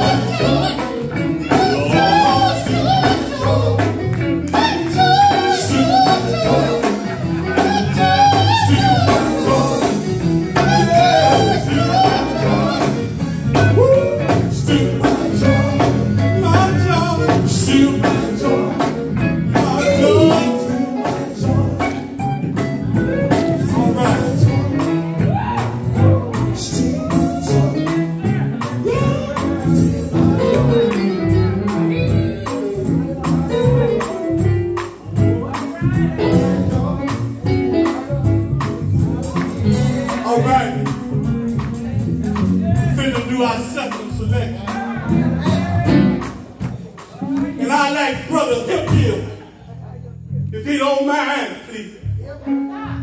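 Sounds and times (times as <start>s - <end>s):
drum beat: 0.0s - 30.9s, 31.5s - 49.3s
man singing: 0.0s - 34.4s, 35.2s - 41.4s, 42.2s - 46.3s, 47.1s - 49.4s
electric guitar: 0.0s - 43.1s
electric bass: 0.0s - 51.2s, 51.8s - 53.0s
keyboard: 0.0s - 53.0s.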